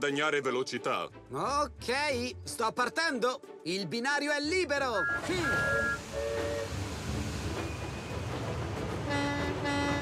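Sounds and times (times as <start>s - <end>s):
steam train rumbling: 5.0s - 10.0s.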